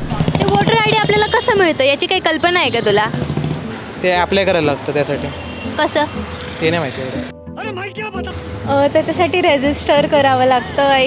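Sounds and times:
low hum of road traffic: 0:00.0 - 0:11.0.

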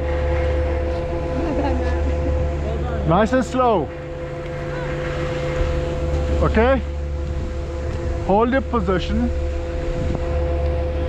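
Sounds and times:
constant hum: 0:00.0 - 0:11.0
low wind rumble: 0:00.0 - 0:11.0.

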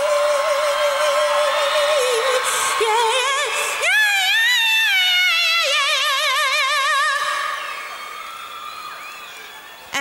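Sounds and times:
woman singing with vibrato: 0:00.0 - 0:07.8.

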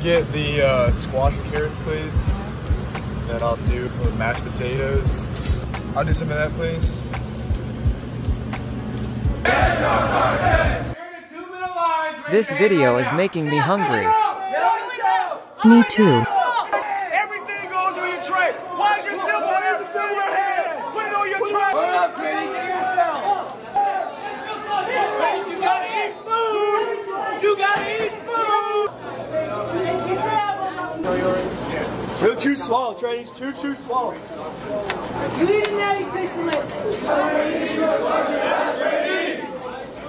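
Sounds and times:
several voices talking: 0:12.1 - 0:40.0
crowd chatter: 0:12.2 - 0:40.0.

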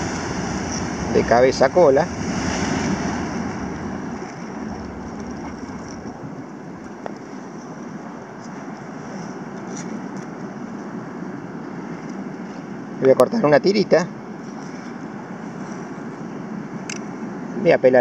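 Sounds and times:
sea surf breaking against rocks: 0:00.0 - 0:08.2.

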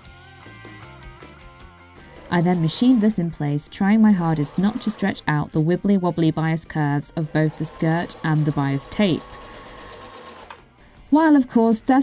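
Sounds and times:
sewing machine stitching: 0:02.0 - 0:05.4, 0:06.8 - 0:10.6.

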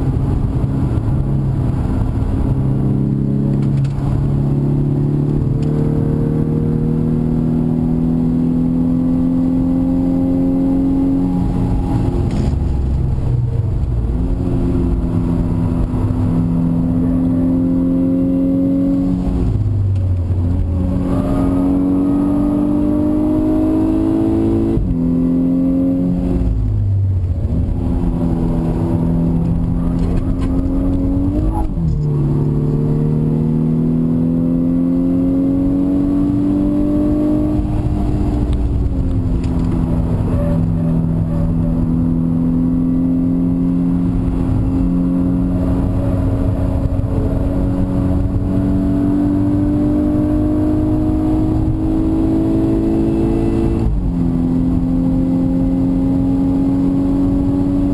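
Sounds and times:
car engine accelerating hard: 0:00.0 - 0:57.9
road and tyre noise: 0:00.0 - 0:57.9.

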